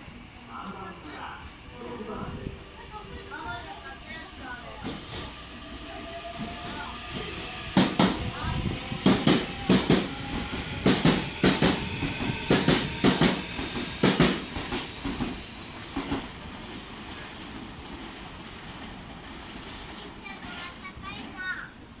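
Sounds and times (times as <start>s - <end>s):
train rumble: 0.0s - 22.0s
train wheels knocking over rail joints: 6.4s - 8.4s, 9.0s - 16.4s.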